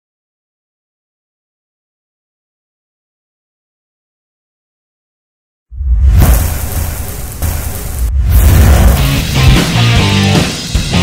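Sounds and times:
deep bass rumble: 5.8 - 10.2
rushing hiss: 6.1 - 9.7
intro music: 6.1 - 11.0.

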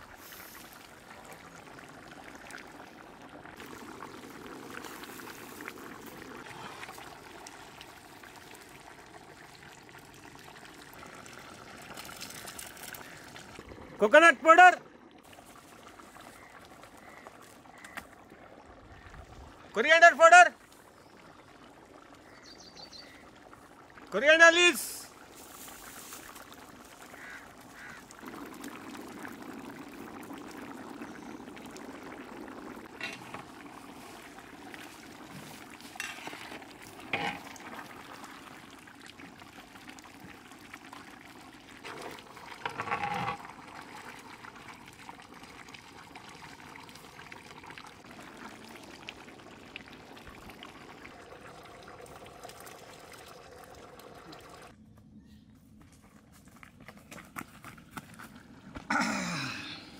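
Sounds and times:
curry bubbling in a pot: 0.0 - 14.0, 14.8 - 19.8, 20.6 - 24.2, 24.8 - 54.8, 56.7 - 59.9
ladle scraping and knocking: 36.0 - 37.6, 41.8 - 43.5.

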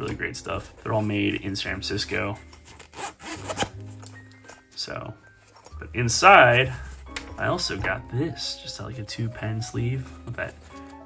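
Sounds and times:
soft background music: 0.0 - 11.0
zipper being pulled open: 2.6 - 4.1.

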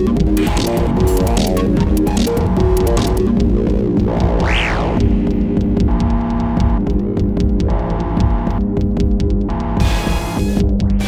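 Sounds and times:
rapid clicking percussion: 0.0 - 4.3
low bass synth drone: 0.0 - 11.0
synth sweep: 0.5 - 6.9.

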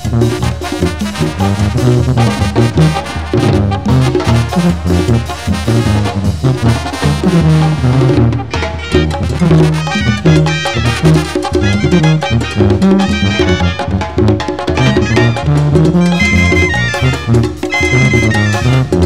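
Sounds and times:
drums keeping a beat: 0.0 - 19.0
trumpets and brass: 0.0 - 19.0
tuba bass line: 0.0 - 19.0.

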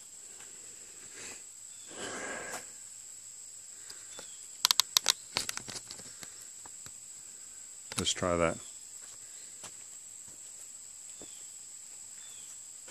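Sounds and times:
high insect buzz: 0.0 - 12.9
sharp clicks and knocks: 4.6 - 6.1.

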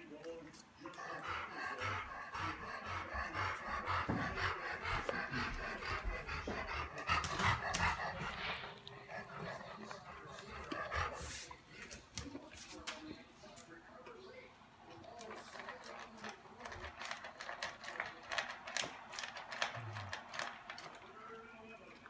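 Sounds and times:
dog panting: 0.0 - 22.0.

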